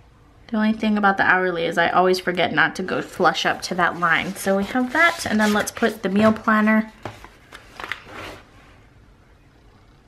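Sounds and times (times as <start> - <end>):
paper rustling: 3.1 - 8.5.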